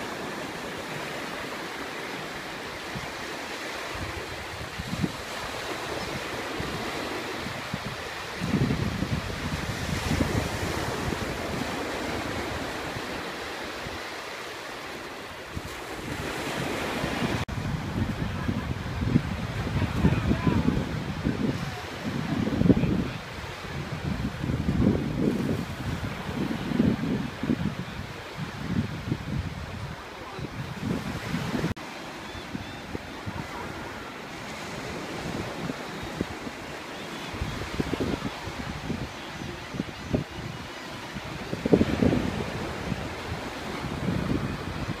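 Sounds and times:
small waves washing onto sand: 0.0s - 45.0s
wind buffeting microphone: 2.5s - 45.0s.

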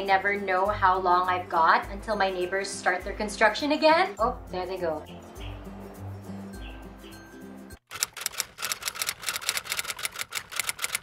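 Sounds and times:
background music with bass line: 0.0s - 7.8s
rapid typewriter-like clicks: 7.9s - 11.0s.

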